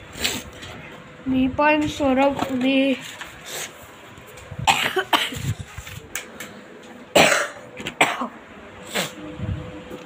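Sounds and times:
person coughing: 0:04.6 - 0:05.6, 0:07.1 - 0:08.4.

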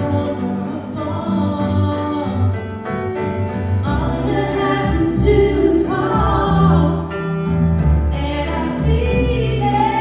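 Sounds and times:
woman singing: 0:00.0 - 0:02.8, 0:03.8 - 0:07.2, 0:08.0 - 0:10.0
grand piano: 0:00.0 - 0:10.0.

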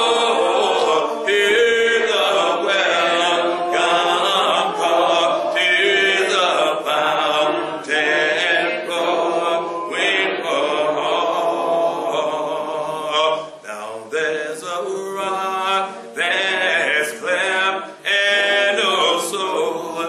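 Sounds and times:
voices singing a hymn: 0:00.0 - 0:20.0.

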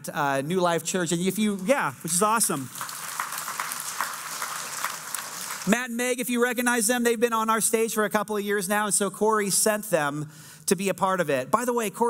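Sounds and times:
congregation applauding: 0:02.1 - 0:05.8.

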